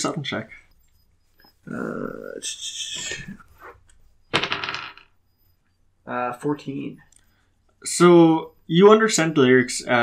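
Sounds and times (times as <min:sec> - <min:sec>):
die clattering on hard surface: 0:04.3 - 0:05.1.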